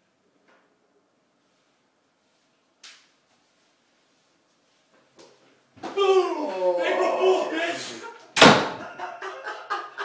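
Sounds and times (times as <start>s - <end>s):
man yelling: 5.8s - 8.2s
door slamming shut: 8.4s - 8.8s.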